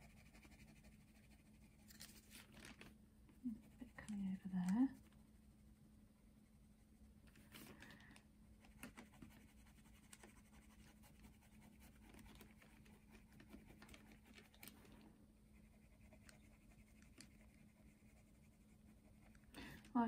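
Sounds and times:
pencil scratching on paper: 0.0s - 1.9s, 8.6s - 14.3s, 15.5s - 19.4s
low steady hum: 0.0s - 20.0s.

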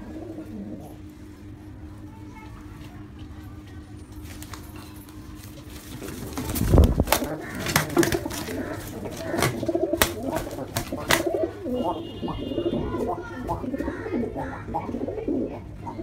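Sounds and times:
pigeons cooing: 0.0s - 1.6s, 5.7s - 16.0s
pigeon wing beats: 4.2s - 14.2s
pigeon wing slaps: 4.3s - 11.5s.

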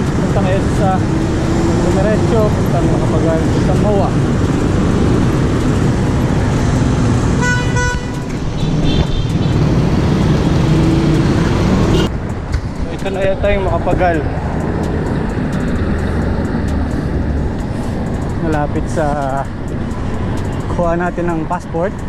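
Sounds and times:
idling motorcycles and cars: 0.0s - 22.0s
vehicle horn honk: 7.4s - 9.5s.

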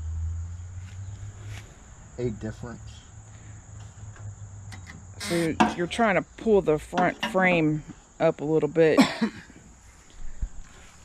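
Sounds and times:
high insect chirring: 0.0s - 8.9s.

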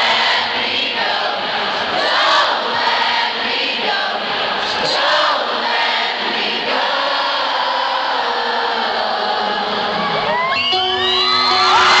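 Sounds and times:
crowd cheering and singing: 0.0s - 12.0s
band music: 9.0s - 12.0s
whistles and whoops: 10.3s - 12.0s.

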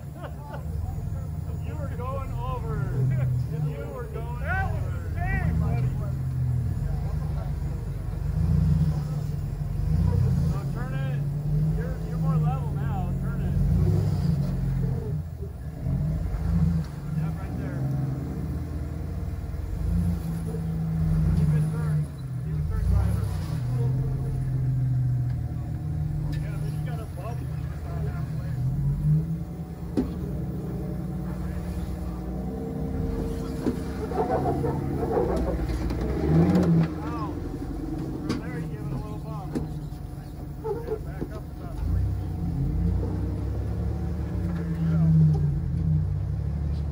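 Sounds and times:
off-road vehicle engine revving: 0.0s - 46.9s
onlookers talking: 0.0s - 46.9s.

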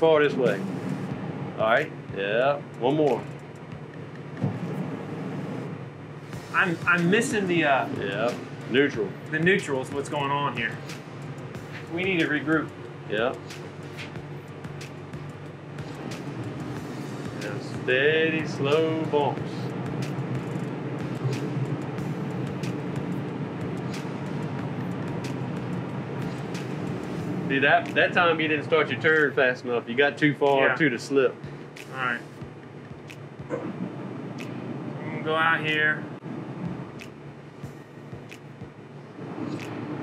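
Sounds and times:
boat engines idling: 0.0s - 40.0s.

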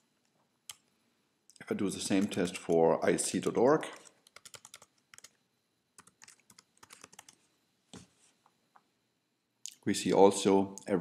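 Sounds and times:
computer keyboard typing: 2.0s - 2.8s, 3.4s - 5.4s, 6.0s - 7.4s.

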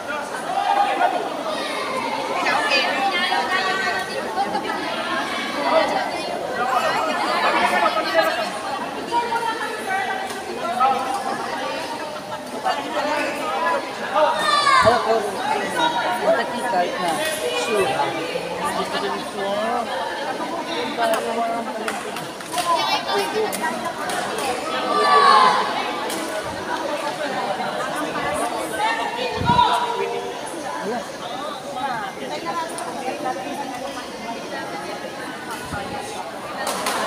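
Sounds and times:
crowd chattering: 0.0s - 37.0s.

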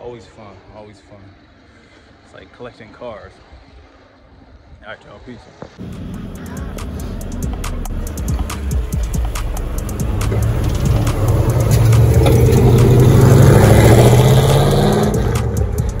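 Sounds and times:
car accelerating past: 5.8s - 16.0s.

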